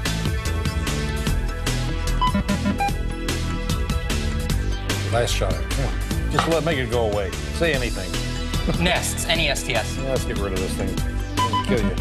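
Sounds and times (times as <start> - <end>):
game show background music: 0.0 - 12.0.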